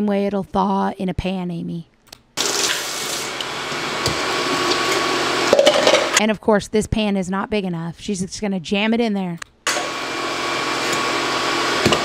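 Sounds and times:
faucet running: 0:02.4 - 0:06.2.

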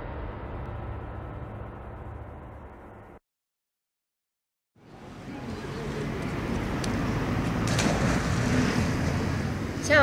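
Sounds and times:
faint distant voices: 0:04.8 - 0:06.6.

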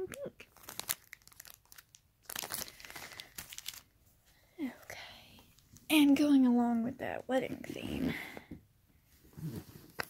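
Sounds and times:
plastic packaging crinkling: 0:00.1 - 0:04.0.

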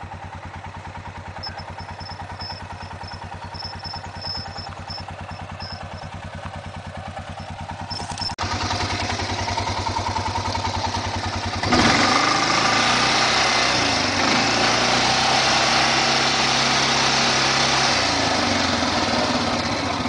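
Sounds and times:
atv engine idling: 0:00.0 - 0:20.0.

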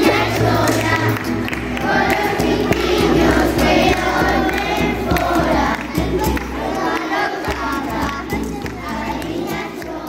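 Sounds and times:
group singing with children: 0:00.0 - 0:10.0.

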